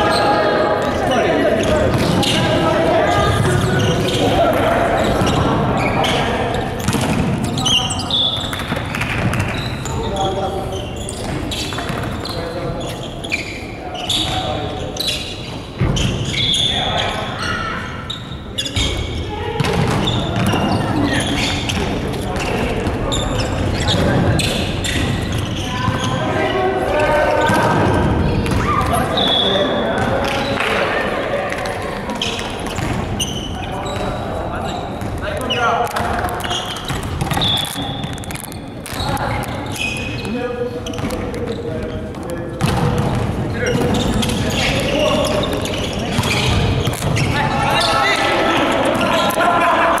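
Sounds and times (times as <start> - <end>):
volleyball hitting gym floor: 0.8 - 10.0, 19.6 - 23.0, 27.0 - 29.1, 31.5 - 33.2, 35.0 - 41.5, 42.2 - 47.4
shoes on wooden court: 31.5 - 49.8.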